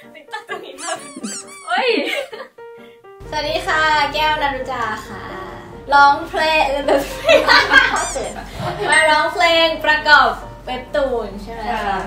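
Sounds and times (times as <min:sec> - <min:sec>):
light background music: 0:00.0 - 0:12.0
excited high squeal: 0:00.8 - 0:01.8, 0:07.9 - 0:08.4
high squeaky glides: 0:00.8 - 0:01.8, 0:07.9 - 0:08.4.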